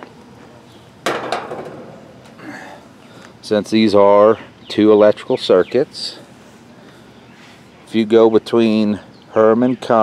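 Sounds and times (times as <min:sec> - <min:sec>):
knocks on sheet metal: 0:01.1 - 0:01.9.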